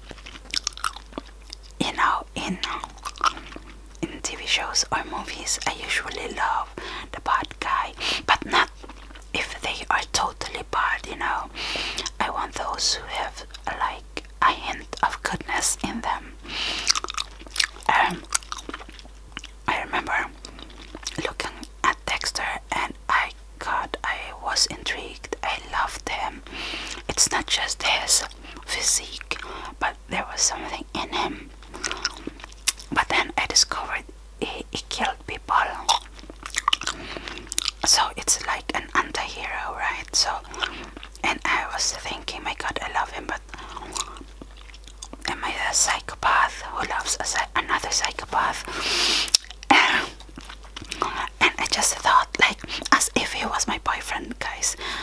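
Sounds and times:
gum chewing mouth clicks: 0:00.0 - 0:01.8, 0:02.5 - 0:04.2, 0:11.9 - 0:12.2, 0:16.7 - 0:19.6, 0:20.4 - 0:22.0, 0:28.2 - 0:29.6, 0:31.6 - 0:33.2, 0:35.7 - 0:39.1, 0:40.0 - 0:41.2, 0:43.3 - 0:45.3, 0:49.0 - 0:53.0
soft whispered talk: 0:04.0 - 0:08.7, 0:09.4 - 0:11.5, 0:12.1 - 0:16.3, 0:21.2 - 0:26.4, 0:27.0 - 0:31.5, 0:32.9 - 0:35.9, 0:37.8 - 0:44.2, 0:45.3 - 0:48.7, 0:51.2 - 0:54.8.

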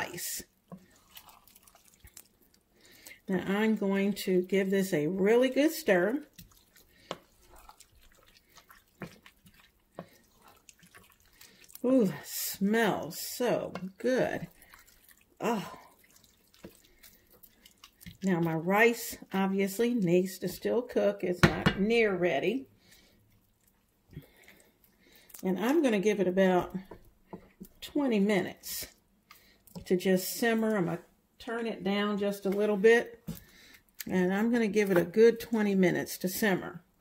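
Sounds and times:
spoon stirring wet mixture: 0:00.0 - 0:36.5.

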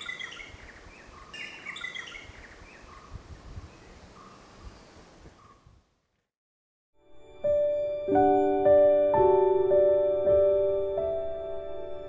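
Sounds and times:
birds chirping and calling: 0:00.0 - 0:04.5
faint outdoor background hiss: 0:00.0 - 0:06.2.

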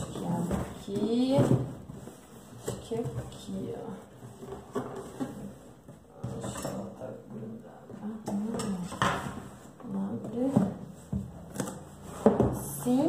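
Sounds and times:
cardboard boxes knocking and sliding: 0:00.0 - 0:06.6, 0:08.8 - 0:13.0.

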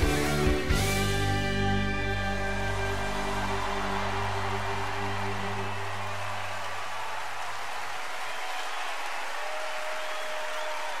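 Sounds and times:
audience applauding and cheering: 0:00.0 - 0:11.0.

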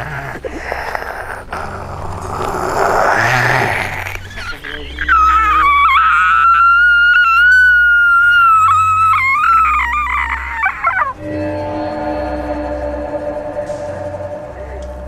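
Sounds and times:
low horror music drone: 0:00.0 - 0:15.0
woman shrieking: 0:04.3 - 0:11.1.

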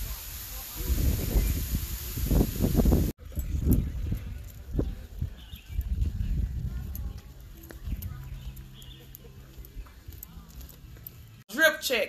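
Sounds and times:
waterfall hissing: 0:00.0 - 0:03.2
wind buffeting microphone: 0:00.0 - 0:09.0.

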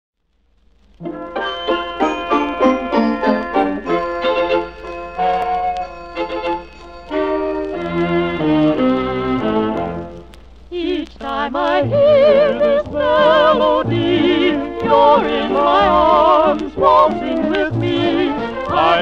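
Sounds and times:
dance orchestra playing a waltz: 0:06.2 - 0:10.0.

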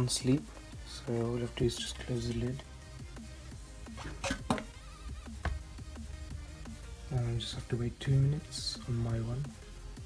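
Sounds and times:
electronic background music: 0:00.0 - 0:10.0
laptop lid closing knocks: 0:04.0 - 0:04.7.

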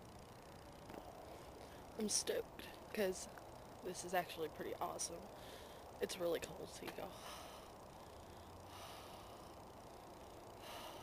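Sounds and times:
person breathing out softly: 0:05.4 - 0:05.9, 0:10.6 - 0:11.0.

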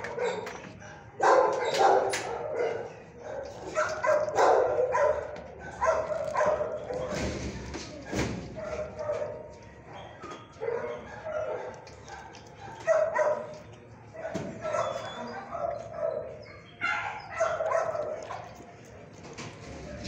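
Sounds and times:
dogs barking and yipping: 0:00.0 - 0:20.0.

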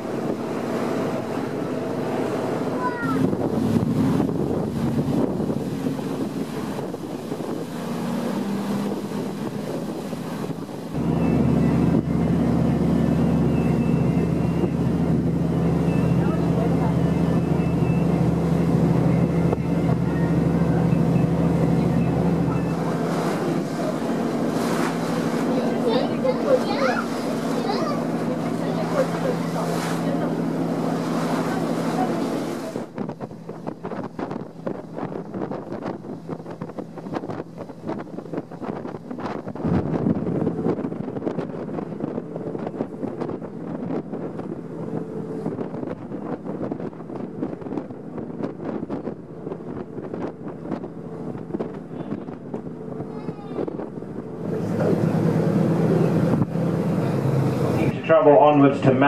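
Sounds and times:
wind buffeting microphone: 0:00.0 - 0:58.8
ferry engine drone: 0:00.0 - 0:59.0.

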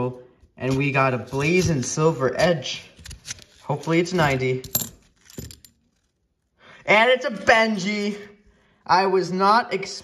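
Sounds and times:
coins clinking in paper roll: 0:03.2 - 0:06.1.

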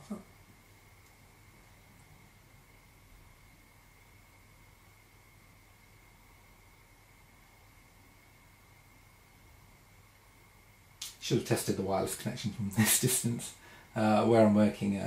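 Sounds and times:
faint steady hiss: 0:00.0 - 0:15.0.

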